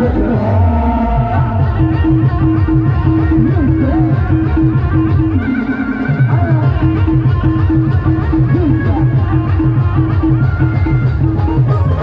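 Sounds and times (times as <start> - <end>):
amplified live band music: 0.0 - 12.0.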